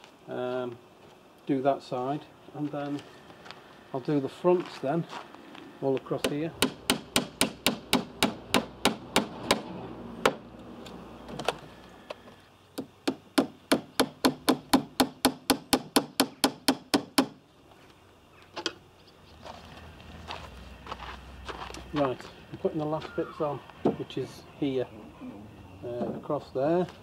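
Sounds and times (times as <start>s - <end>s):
hammer striking wooden boards: 6.2s - 10.4s, 13.0s - 17.4s.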